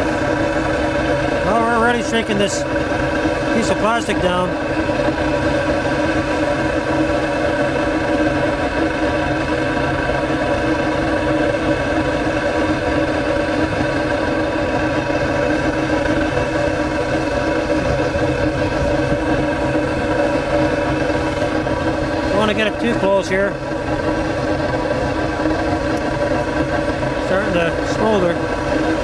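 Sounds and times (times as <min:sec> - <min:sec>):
burner exhaust hum and rush: 0:00.0 - 0:29.0.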